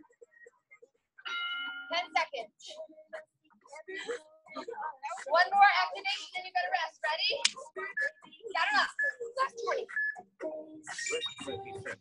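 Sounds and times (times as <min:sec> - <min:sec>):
indistinct talking: 0:00.0 - 0:12.0.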